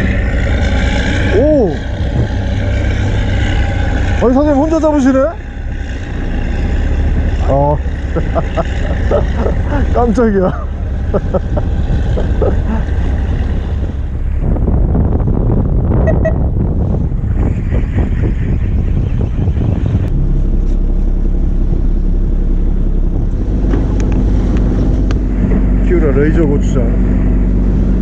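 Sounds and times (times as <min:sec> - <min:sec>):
boat engine running: 0:00.0 - 0:28.0
sea noise around hull: 0:00.0 - 0:28.0
wind buffeting microphone: 0:00.0 - 0:28.0.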